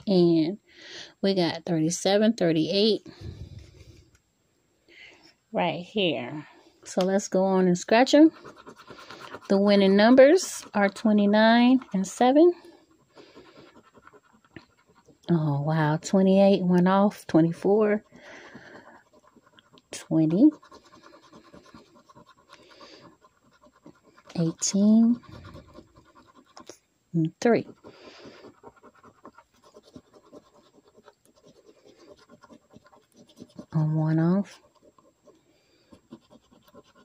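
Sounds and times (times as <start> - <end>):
coin scratching lottery ticket: 7.4 - 15.2, 19.0 - 26.7, 27.5 - 35.3, 36.0 - 37.0.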